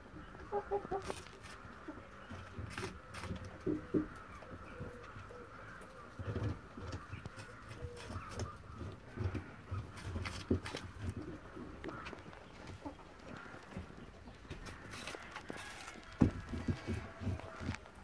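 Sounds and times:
birds calling: 0:00.0 - 0:18.0
rabbit crunching apple: 0:00.6 - 0:04.0, 0:06.2 - 0:13.9, 0:14.5 - 0:18.0.

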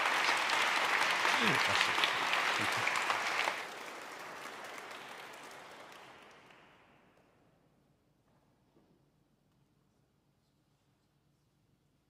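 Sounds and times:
congregation applauding: 0:00.0 - 0:07.1.

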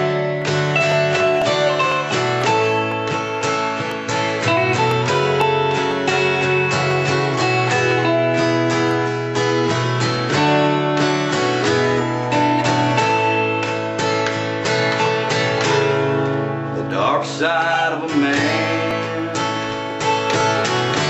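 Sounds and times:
acoustic guitar strumming chords: 0:00.0 - 0:21.0
electric guitar playing: 0:00.0 - 0:21.0.

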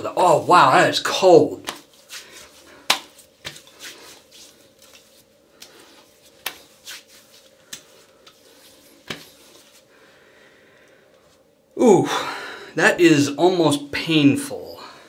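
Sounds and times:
hands slapping face: 0:01.6 - 0:08.4, 0:09.0 - 0:09.4.

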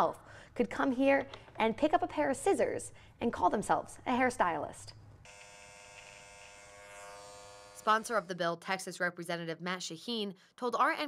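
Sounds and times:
electric hair clippers buzzing: 0:05.3 - 0:08.1.

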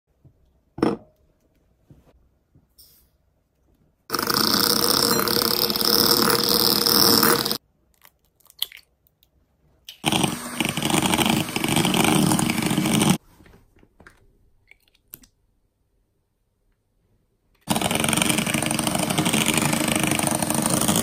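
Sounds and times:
electric hand mixer beating in bowl: 0:04.1 - 0:07.6, 0:10.0 - 0:13.2, 0:17.7 - 0:21.0.

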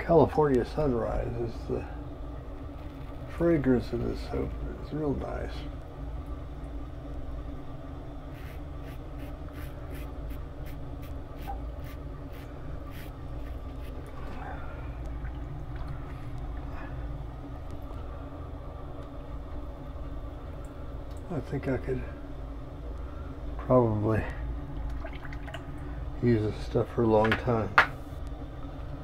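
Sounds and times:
low hum: 0:00.0 - 0:29.0
razor scraping stubble: 0:08.3 - 0:14.0.

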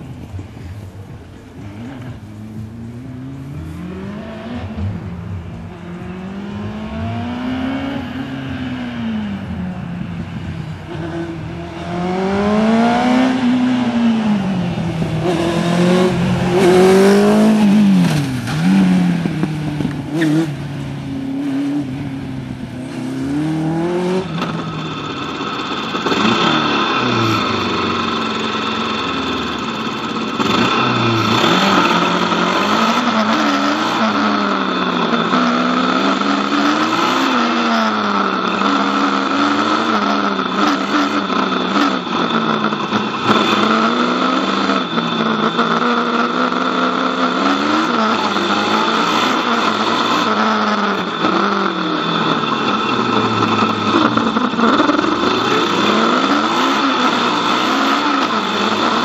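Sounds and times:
car engine revving: 0:00.0 - 0:59.0
steady high whine: 0:00.0 - 0:59.0.

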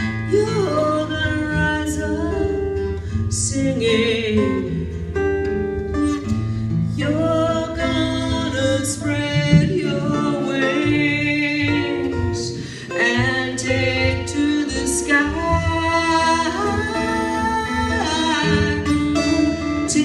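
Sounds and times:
acoustic guitar: 0:00.0 - 0:20.0
woman singing long notes: 0:07.0 - 0:20.0.

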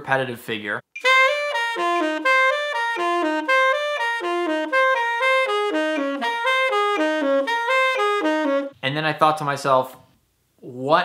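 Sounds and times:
tenor saxophone playing: 0:01.0 - 0:08.8.

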